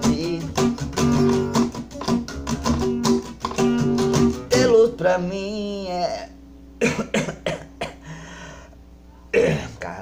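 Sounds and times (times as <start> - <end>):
man coughing: 6.8 - 8.1, 9.4 - 9.9.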